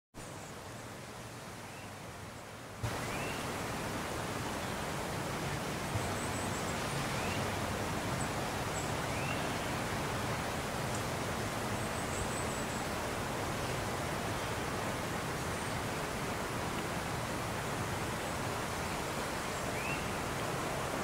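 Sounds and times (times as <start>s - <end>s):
outdoor background hiss: 0.2s - 21.0s.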